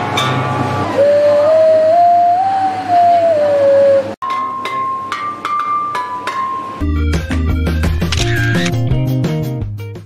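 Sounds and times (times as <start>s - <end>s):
music track with bass line: 6.8s - 10.0s.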